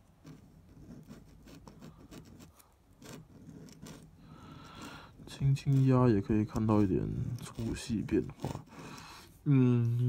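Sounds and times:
pen nib scratching paper: 0.0s - 9.5s.

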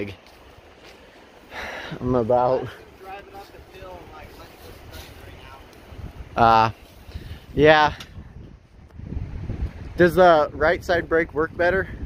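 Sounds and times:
wind buffeting microphone: 0.0s - 12.0s
man talking: 1.9s - 5.7s, 6.4s - 6.8s, 7.5s - 8.0s.

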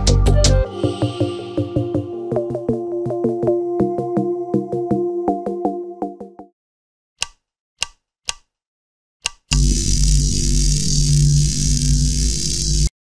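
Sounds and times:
short sharp clicks: 9.2s - 9.6s
bass-heavy sustained drone: 9.6s - 12.9s.

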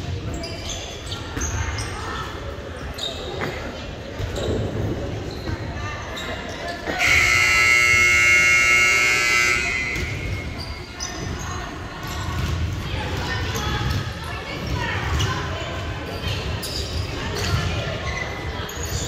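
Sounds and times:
players' voices: 0.0s - 19.0s
scoreboard buzzer: 7.0s - 10.6s
volleyballs bouncing and hit: 8.3s - 15.3s.

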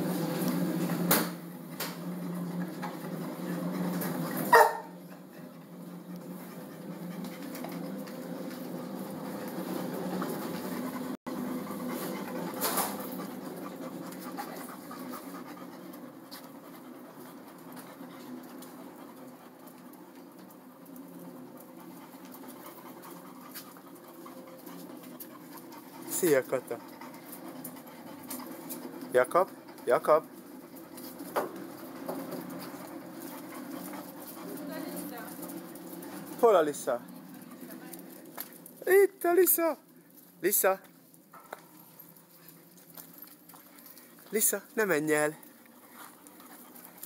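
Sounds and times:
dogs panting: 0.2s - 47.0s.

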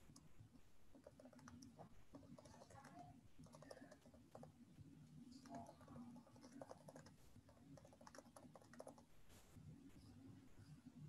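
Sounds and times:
low background hum: 0.0s - 11.0s
typing on computer keyboard: 0.9s - 4.6s, 5.3s - 9.1s.

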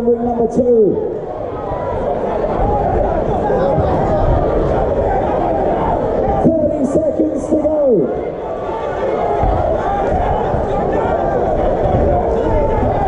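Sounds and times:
crowd chattering and shouting: 0.0s - 13.0s
loud yells: 1.2s - 13.0s.

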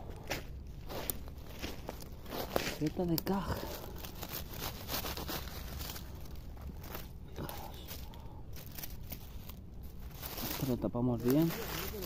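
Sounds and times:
dry leaves rustling and crackling: 0.2s - 12.0s.

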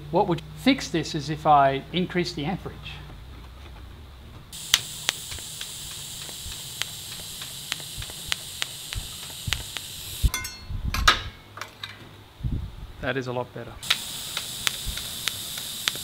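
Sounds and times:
welding arc hiss and crackles: 4.5s - 10.6s, 13.8s - 16.0s.

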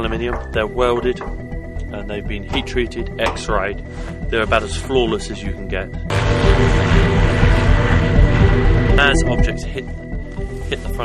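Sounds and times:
background music: 0.0s - 11.0s
engine and propeller rushing: 6.1s - 9.7s.

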